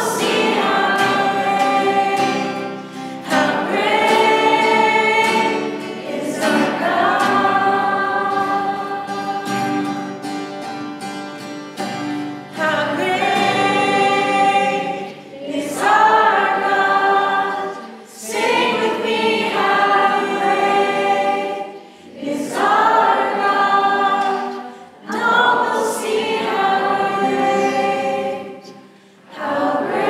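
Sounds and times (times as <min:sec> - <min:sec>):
group singing worship song: 0:00.0 - 0:11.1, 0:11.8 - 0:30.0
acoustic guitar: 0:00.0 - 0:30.0
ukulele: 0:00.0 - 0:30.0.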